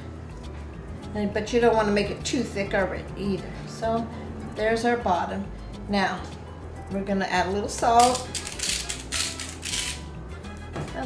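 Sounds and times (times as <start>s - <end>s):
soft background music: 0.0s - 11.0s
salt grinder grinding: 8.0s - 10.1s.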